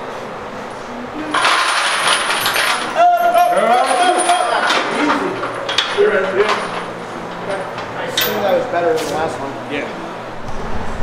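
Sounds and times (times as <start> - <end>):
metal chains clinking: 1.3 - 8.7.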